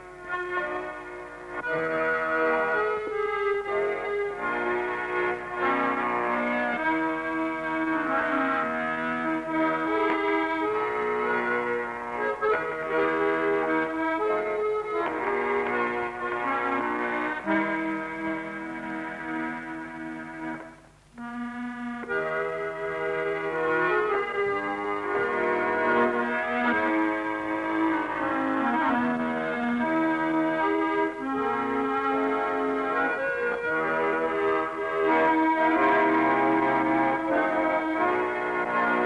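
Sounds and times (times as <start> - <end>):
accordion playing folk tune: 0.0 - 39.0.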